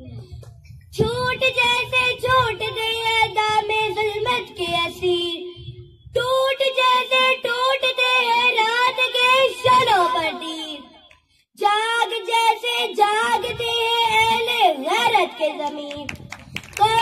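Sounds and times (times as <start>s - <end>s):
girl singing into microphone: 0.0s - 10.9s, 11.6s - 16.1s.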